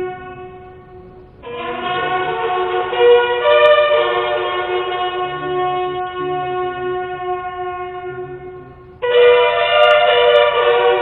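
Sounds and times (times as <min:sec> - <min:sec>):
bugles playing in unison: 0:00.0 - 0:11.0.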